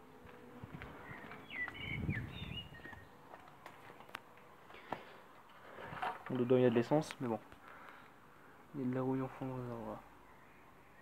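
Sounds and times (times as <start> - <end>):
bird chirps: 1.0 - 3.2.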